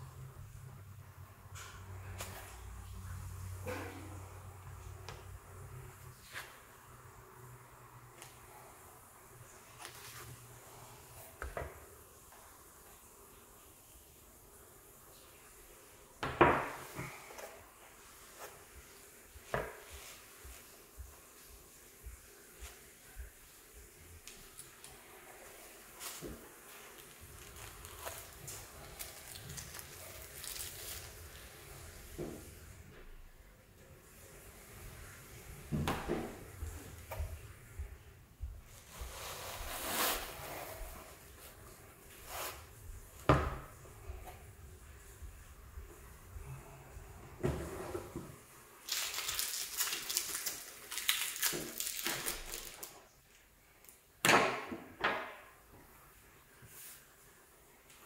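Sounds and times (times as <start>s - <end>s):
packaging rustling and scraping: 25.8s - 31.7s, 38.8s - 42.7s
packaging rustling: 26.0s - 31.6s, 48.8s - 53.0s.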